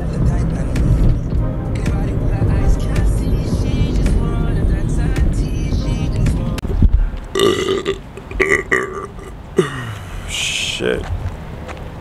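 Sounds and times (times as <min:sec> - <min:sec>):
man burping: 0:07.3 - 0:10.4.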